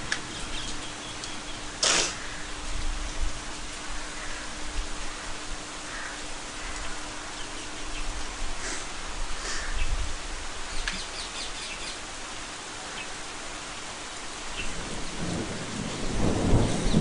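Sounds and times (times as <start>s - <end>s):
rain falling on foliage: 0.0s - 17.0s.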